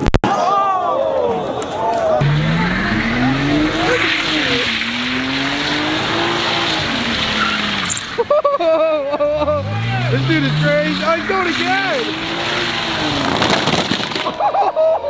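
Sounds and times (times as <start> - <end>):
car engine at high revs: 2.2 - 8.4, 9.2 - 13.9
tyres spinning and screeching: 2.2 - 8.4, 9.3 - 14.5.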